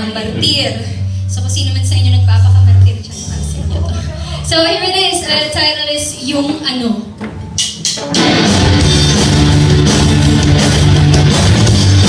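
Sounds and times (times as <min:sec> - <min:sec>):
rock band with electric guitars: 0:07.2 - 0:12.0.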